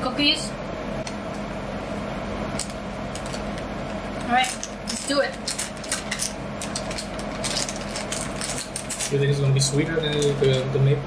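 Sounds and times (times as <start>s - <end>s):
plastic snack bag crinkling: 4.4s - 9.2s.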